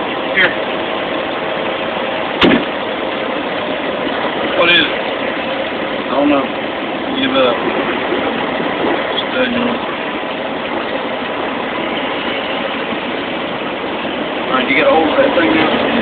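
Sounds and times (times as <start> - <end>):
truck engine running: 0.0 - 16.0.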